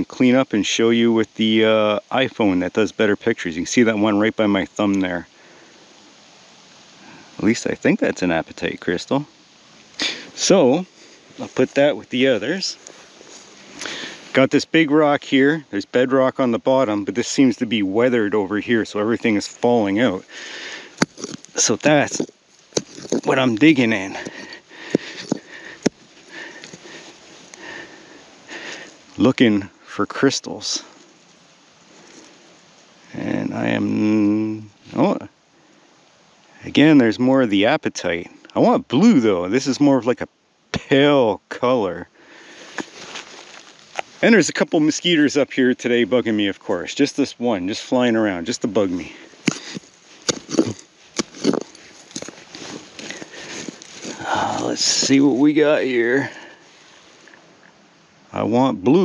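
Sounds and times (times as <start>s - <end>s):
scraping in rock and soil: 9.9s - 14.6s, 16.7s - 29.5s, 31.8s - 32.5s, 42.4s - 47.0s, 47.7s - 57.4s
small stones clicking: 21.0s - 26.0s, 49.4s - 54.2s.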